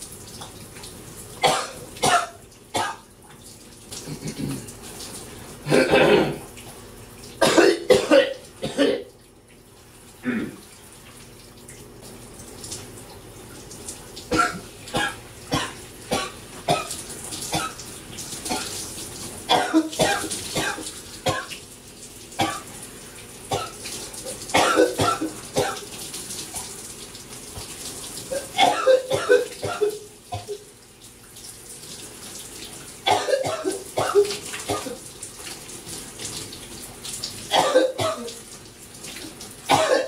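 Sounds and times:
shower water running: 0.0s - 40.0s
man coughing: 4.1s - 4.7s, 5.7s - 6.4s, 7.4s - 9.1s, 10.2s - 10.6s, 14.3s - 16.9s, 19.5s - 21.5s, 24.6s - 25.8s, 28.3s - 30.6s, 33.1s - 35.0s, 37.5s - 38.3s, 39.7s - 40.0s.

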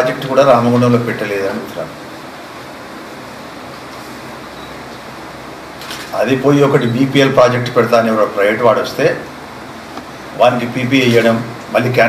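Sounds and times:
air conditioning hiss and hum: 0.0s - 12.0s.

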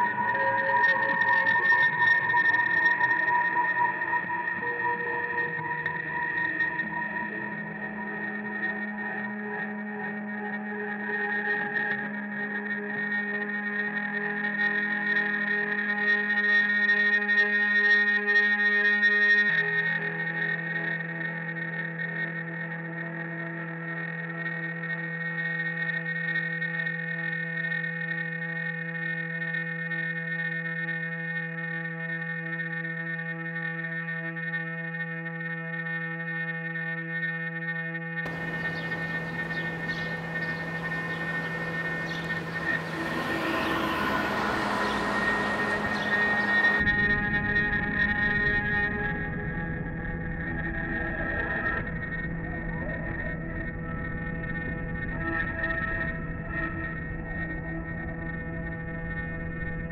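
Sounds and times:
droning electric guitar: 0.0s - 59.9s
rough noisy guitar wash: 38.3s - 48.6s.

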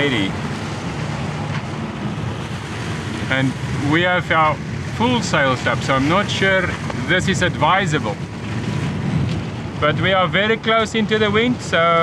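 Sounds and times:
wind and water rushing: 0.0s - 12.0s
wind rumbling on microphone: 0.0s - 12.0s.

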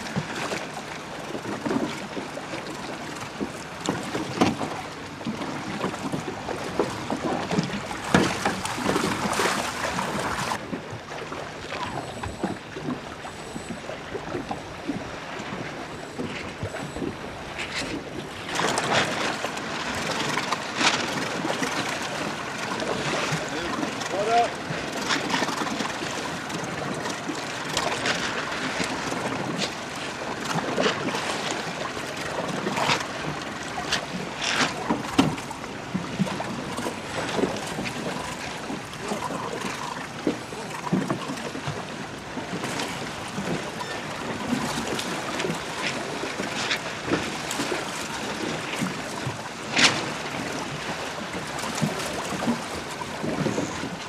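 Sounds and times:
water splashing against boats: 0.0s - 54.0s.

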